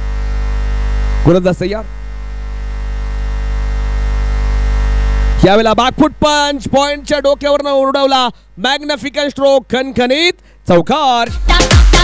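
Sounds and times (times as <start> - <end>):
electrical mains hum: 0.0 - 10.9
person's voice: 5.4 - 11.4.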